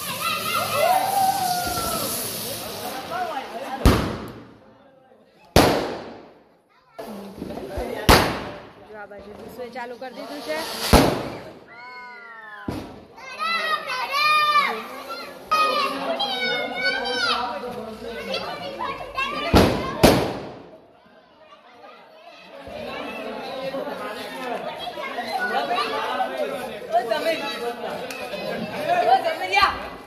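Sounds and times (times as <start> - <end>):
children's excited voices: 0.0 - 2.2, 11.7 - 20.1, 21.0 - 29.9
mixed chatter: 0.0 - 30.0
firecracker bangs: 3.8 - 4.6, 5.6 - 6.4, 8.0 - 8.8, 10.4 - 11.7, 12.7 - 13.1, 19.5 - 20.8.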